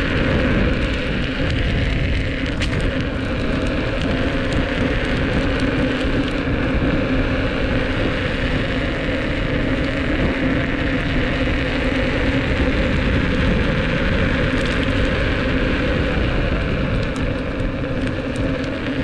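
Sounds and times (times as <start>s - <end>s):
electric motor hum and whine: 0.0s - 19.0s
tyre noise on asphalt: 0.0s - 19.0s
wind on microphone: 0.0s - 19.0s.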